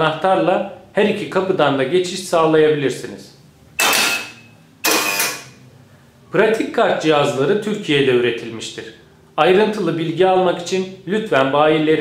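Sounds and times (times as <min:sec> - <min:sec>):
card reader beeping: 0:03.8 - 0:05.6
electric lock clacking: 0:03.8 - 0:05.6.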